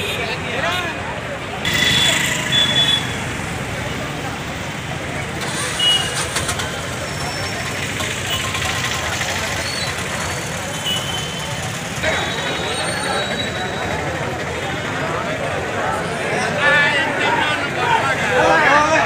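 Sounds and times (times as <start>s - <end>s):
crowd talking: 0.0s - 19.0s
traffic: 0.0s - 19.0s.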